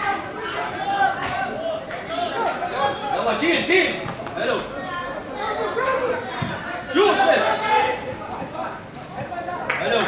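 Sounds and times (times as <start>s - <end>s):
people shouting and chattering: 0.0s - 10.0s.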